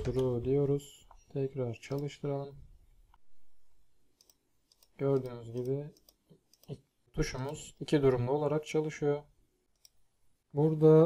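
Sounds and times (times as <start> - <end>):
faint computer mouse clicks: 1.9 - 2.1, 4.2 - 6.8, 9.7 - 10.0.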